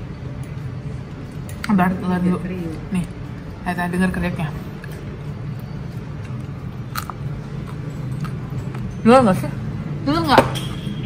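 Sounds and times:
crunchy chewing: 0:04.8 - 0:09.0.

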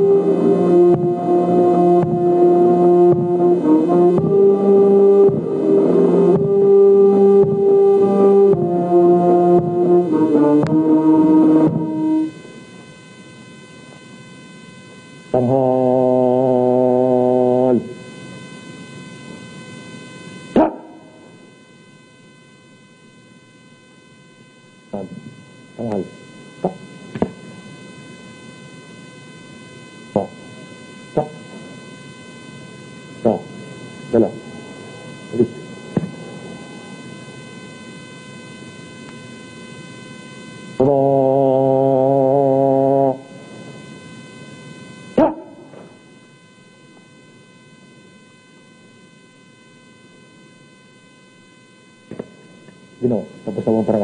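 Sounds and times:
faint steady hum: 0:00.0 - 0:54.0.

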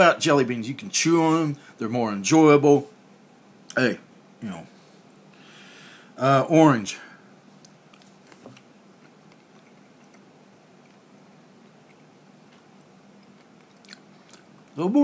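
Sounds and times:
chewing with mouth closed: 0:09.0 - 0:14.8.

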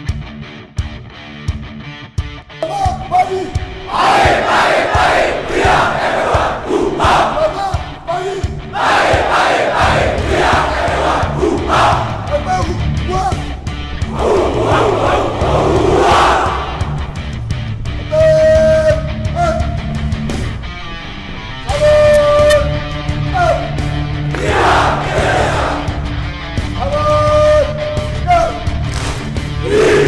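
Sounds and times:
rock music: 0:00.0 - 0:30.0
crowd chanting in unison: 0:03.6 - 0:12.4, 0:14.0 - 0:17.2, 0:24.3 - 0:26.2, 0:29.6 - 0:30.0.

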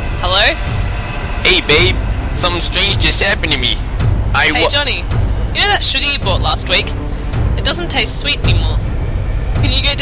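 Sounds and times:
street rumble: 0:00.0 - 0:10.0
man speaking: 0:01.5 - 0:03.8, 0:04.4 - 0:05.0.

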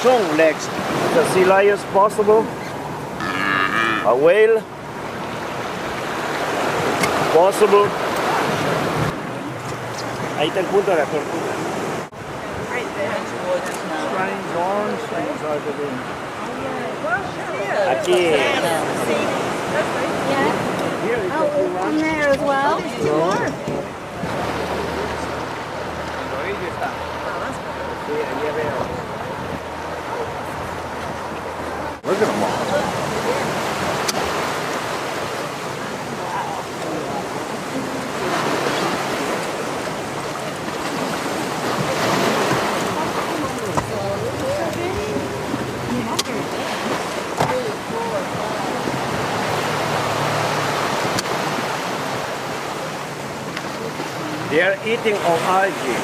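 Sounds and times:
sea waves washing: 0:00.0 - 0:56.0
wind: 0:00.0 - 0:56.0.

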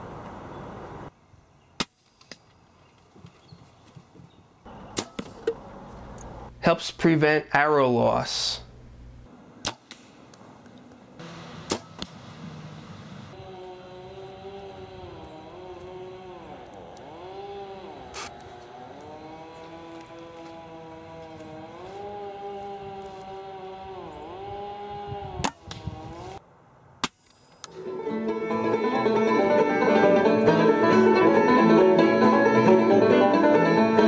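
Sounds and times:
arrows shot from a bow: 0:04.9 - 0:05.6, 0:09.6 - 0:10.4, 0:11.5 - 0:12.5, 0:25.4 - 0:26.4
steady pitched hum: 0:10.4 - 0:26.4.

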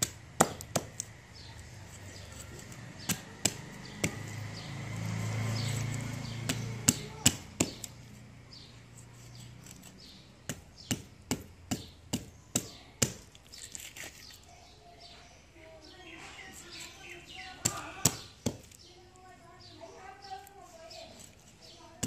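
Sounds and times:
knife chopping fish on wooden block: 0:00.0 - 0:01.1, 0:02.6 - 0:04.6, 0:05.3 - 0:08.0, 0:09.6 - 0:13.4, 0:17.6 - 0:18.8.

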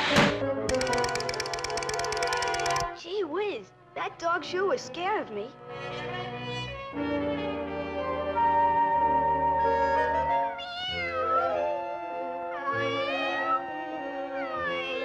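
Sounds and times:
orchestral cartoon music: 0:04.1 - 0:15.0.

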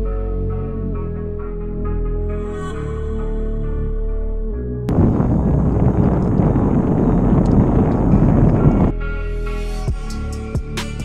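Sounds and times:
wind buffeting microphone: 0:04.9 - 0:08.9.

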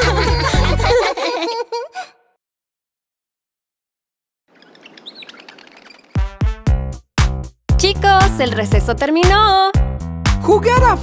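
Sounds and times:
faint birds chirping: 0:04.5 - 0:06.3.

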